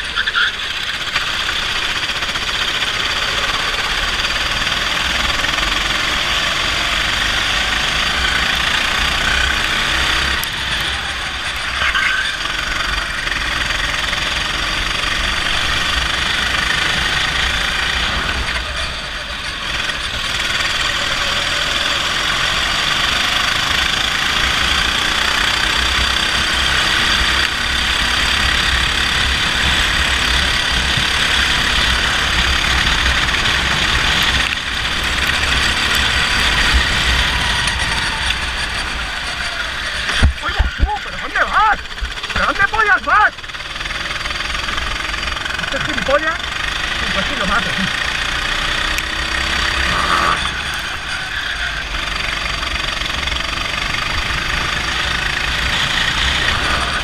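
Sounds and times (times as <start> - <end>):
kart engine running hard: 0.0 - 57.0.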